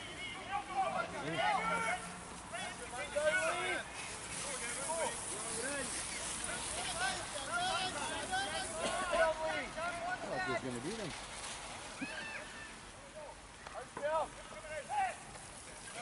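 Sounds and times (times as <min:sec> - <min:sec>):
steady outdoor hiss: 0:00.0 - 0:16.0.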